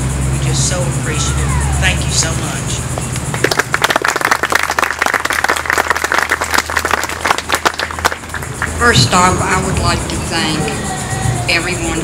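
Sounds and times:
audience applauding: 3.2s - 8.9s.

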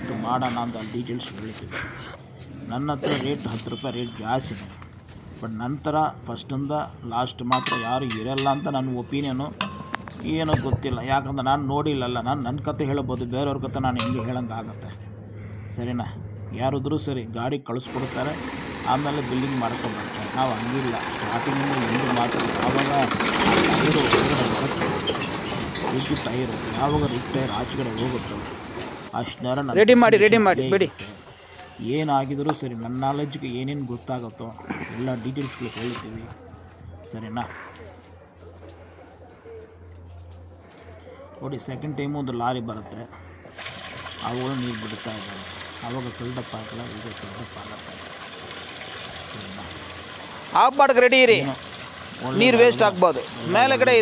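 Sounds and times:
water rushing through a hose: 17.9s - 28.4s, 35.2s - 36.4s, 43.5s - 54.0s
tractor engine running: 17.9s - 29.2s.

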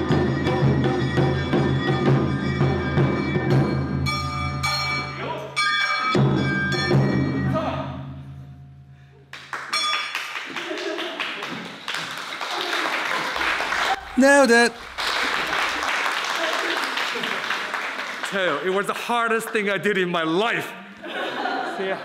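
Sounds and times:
festival music with drums: 0.0s - 7.6s.

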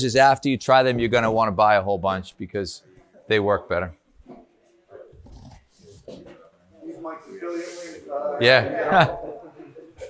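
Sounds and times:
background talking: 5.8s - 10.0s.

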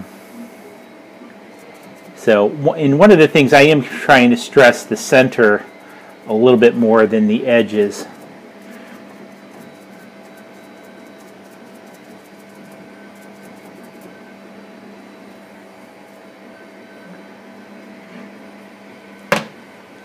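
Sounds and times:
low machine hum: 0.0s - 20.0s
brush scratching on glass: 1.4s - 14.5s.

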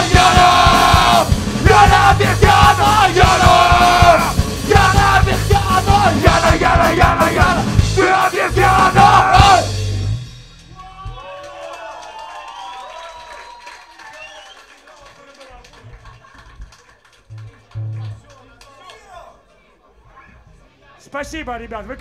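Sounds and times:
shouted vocals: 0.0s - 9.8s
crowd shouting and cheering: 0.0s - 10.0s, 10.6s - 14.8s
punk band playing live: 0.0s - 11.2s.

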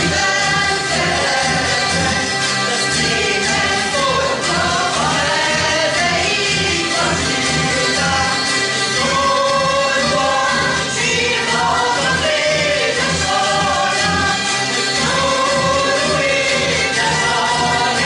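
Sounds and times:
people singing in unison: 0.0s - 18.0s
zither ensemble strumming: 0.0s - 18.0s.

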